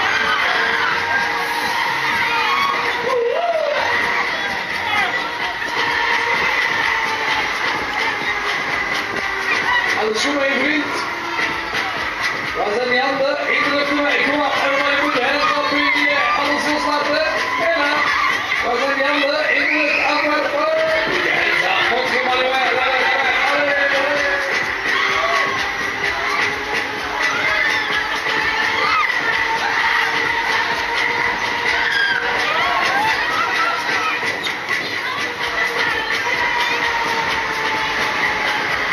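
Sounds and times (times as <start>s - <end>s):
ride music: 0.0s - 38.9s.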